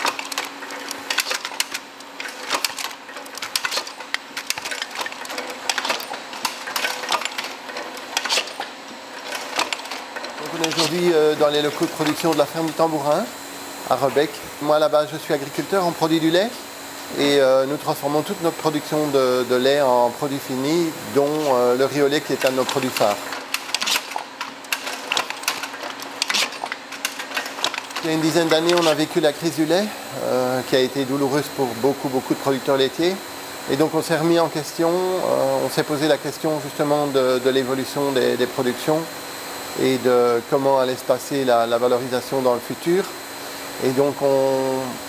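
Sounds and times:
machine clicks and clacks: 0:00.0 - 0:13.0, 0:19.6 - 0:29.8
machine hum: 0:00.0 - 0:45.0.

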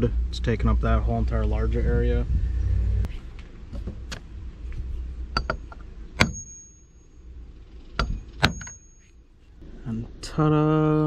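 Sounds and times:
hammer striking metal crimper: 0:05.4 - 0:07.2.

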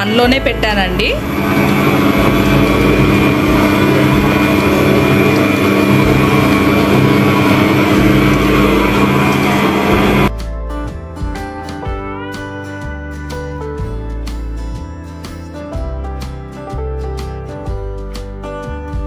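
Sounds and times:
guitar music: 0:00.0 - 0:19.0
stand mixer motor running: 0:00.5 - 0:10.3.

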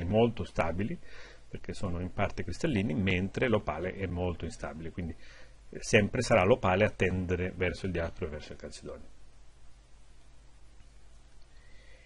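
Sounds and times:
faint thin whine: 0:00.0 - 0:12.0
low hiss and hum: 0:00.0 - 0:12.0.

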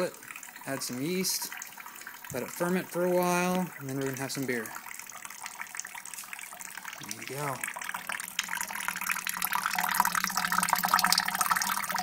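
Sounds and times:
liquid trickling and splashing into pot: 0:00.0 - 0:12.0.

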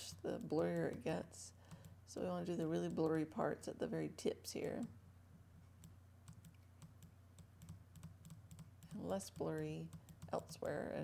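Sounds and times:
low steady hum: 0:00.0 - 0:11.0
computer clicking: 0:00.1 - 0:02.0, 0:05.8 - 0:11.0.

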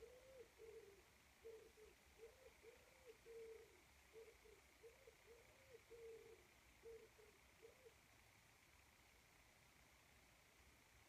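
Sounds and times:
pigeon cooing: 0:00.0 - 0:08.0.

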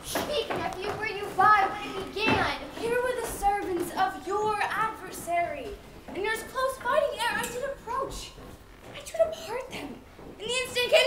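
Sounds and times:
young people speaking: 0:00.0 - 0:11.0.

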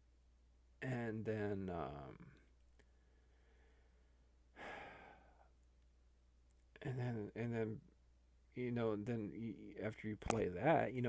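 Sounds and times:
man exhaling: 0:04.6 - 0:05.5.

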